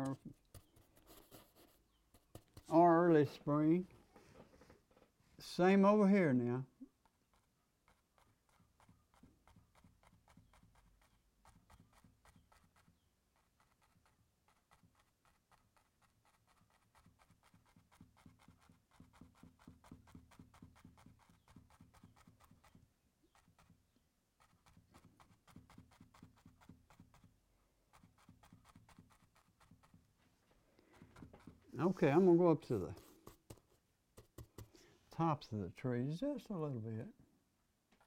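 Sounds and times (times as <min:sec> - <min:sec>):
brush dabbing paint on canvas: 0:00.0 - 0:03.5, 0:06.7 - 0:35.0.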